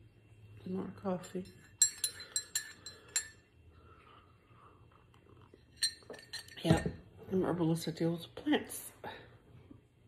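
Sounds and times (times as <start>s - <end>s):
spoon clinking in ceramic mug: 1.2s - 3.5s, 5.7s - 7.0s.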